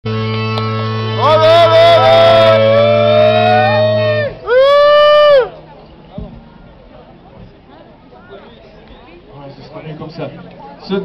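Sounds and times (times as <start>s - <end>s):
fiddle melody: 0.1s - 4.4s
steady low drone: 0.1s - 9.3s.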